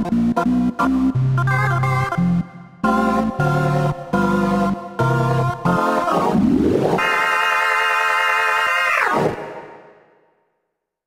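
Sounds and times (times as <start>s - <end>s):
distorted synthesiser organ chords: 0.0s - 10.1s.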